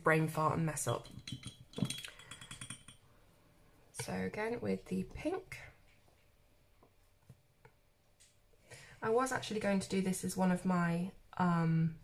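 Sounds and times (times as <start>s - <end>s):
paintbrush clinking against glass jar: 0.7s - 3.0s.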